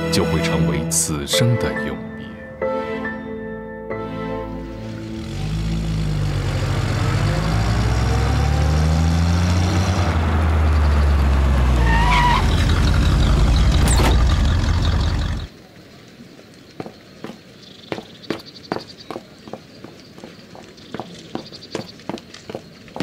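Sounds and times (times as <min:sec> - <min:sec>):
car engine revving: 0:04.7 - 0:15.5.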